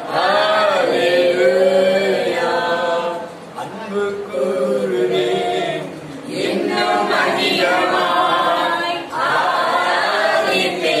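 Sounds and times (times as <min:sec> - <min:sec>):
voices singing worship song: 0:00.0 - 0:11.0.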